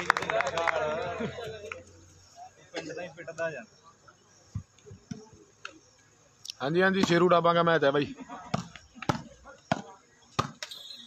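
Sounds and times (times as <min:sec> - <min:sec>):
volleyball hit by hand: 0:08.5 - 0:10.7.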